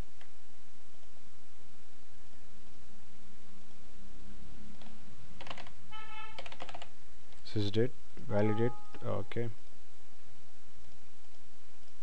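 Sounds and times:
steady low hum: 0:00.0 - 0:12.0
computer keyboard typing: 0:04.8 - 0:07.0.

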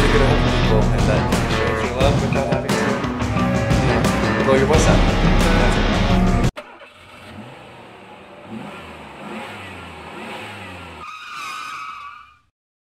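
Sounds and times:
vehicle engine accelerating: 0:03.4 - 0:11.0.

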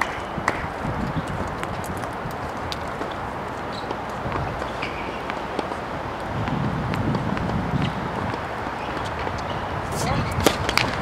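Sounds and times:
tennis balls bouncing and struck: 0:00.0 - 0:11.0.

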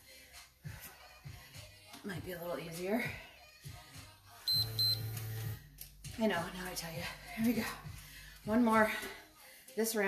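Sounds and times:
faint background music: 0:00.0 - 0:10.0
short high electronic beeps: 0:04.5 - 0:05.4.

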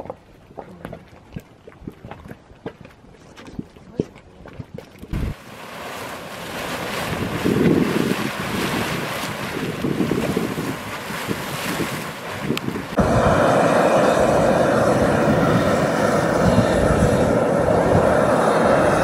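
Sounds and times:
boiling water and steam rushing: 0:00.0 - 0:19.0
wind on microphone: 0:03.4 - 0:05.4, 0:06.5 - 0:19.0.

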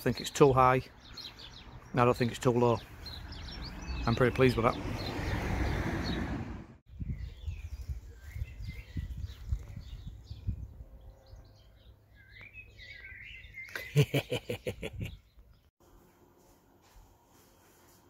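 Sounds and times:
small birds chirping: 0:00.0 - 0:15.7.

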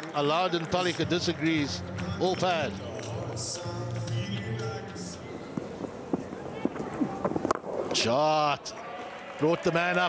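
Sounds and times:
commentator speaking: 0:00.1 - 0:02.9.

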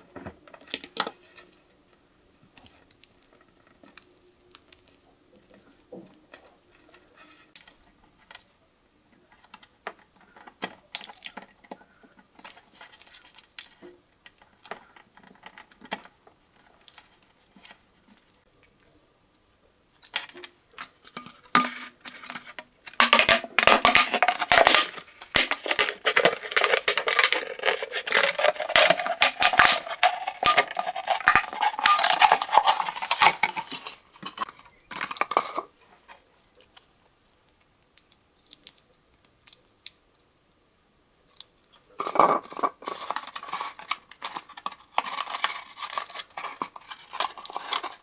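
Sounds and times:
knife cutting plastic bottle: 0:21.6 - 0:34.5.

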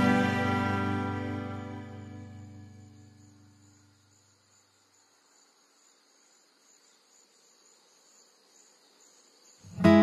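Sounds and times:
low song notes: 0:00.0 - 0:02.7
faint high hiss: 0:00.0 - 0:10.0.

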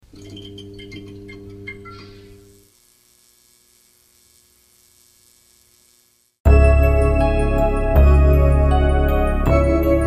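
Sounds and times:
electrical hum: 0:00.0 - 0:06.4.

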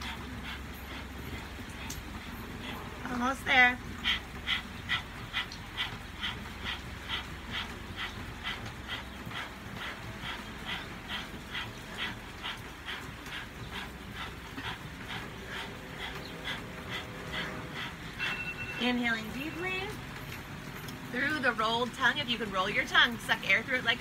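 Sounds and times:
people panting rapidly: 0:00.0 - 0:24.0.

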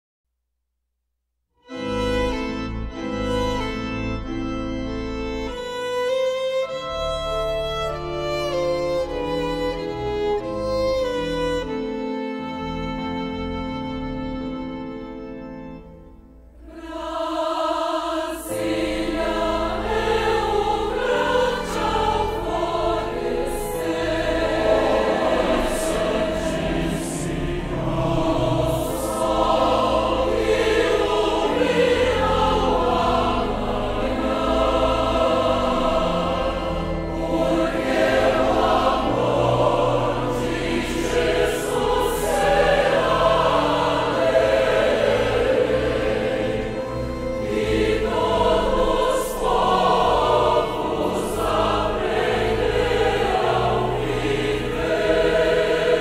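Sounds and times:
electronic keyboard low notes: 0:01.7 - 0:17.1, 0:18.5 - 0:56.0
mixed choir singing a hymn: 0:16.6 - 0:56.0.

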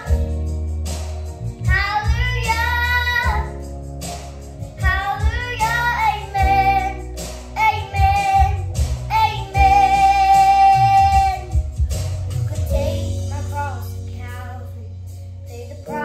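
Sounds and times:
girl singing: 0:00.0 - 0:00.4, 0:01.6 - 0:03.7, 0:04.7 - 0:11.7, 0:12.5 - 0:16.0
instrumental backing music: 0:00.0 - 0:16.0.

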